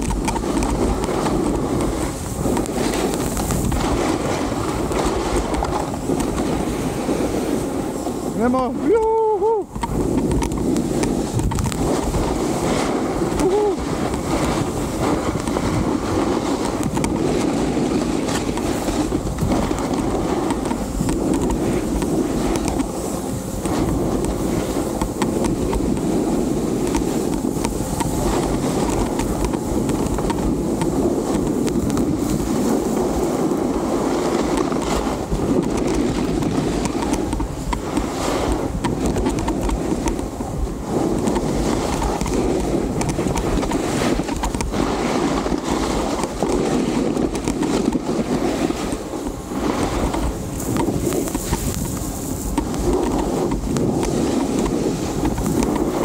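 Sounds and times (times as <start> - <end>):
snowboard scraping on snow: 0.0 - 56.0
wind noise on microphone: 0.0 - 56.0.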